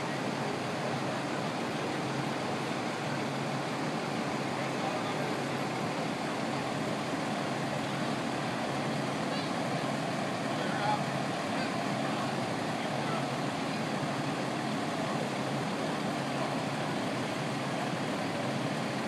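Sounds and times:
faint voices: 0.0 - 19.0
fire engines idling: 0.0 - 19.0.

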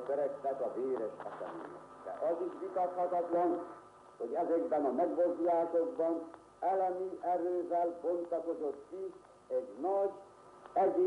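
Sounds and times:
person speaking on old recording: 0.0 - 11.0.

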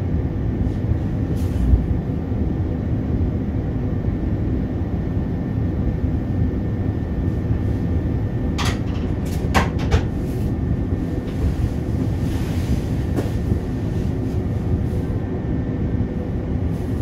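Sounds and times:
faint hum: 0.0 - 17.0
train cab low rumble: 0.0 - 17.0.

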